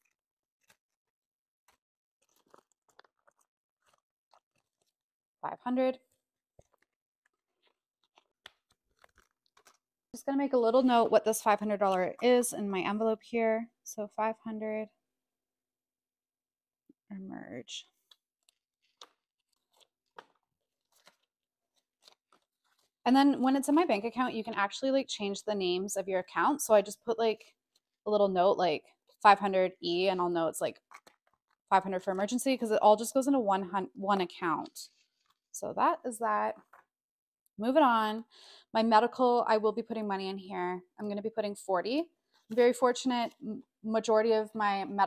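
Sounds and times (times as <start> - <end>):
paper money rustling: 1.7 - 5.0, 6.6 - 9.8, 18.1 - 23.0.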